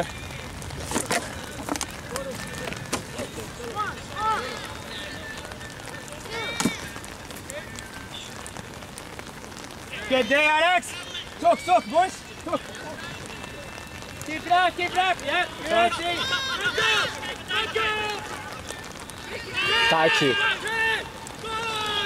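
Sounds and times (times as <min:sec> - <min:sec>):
steady outdoor hiss: 0:00.0 - 0:22.0
distant shouts of players: 0:02.1 - 0:08.5, 0:09.9 - 0:22.0.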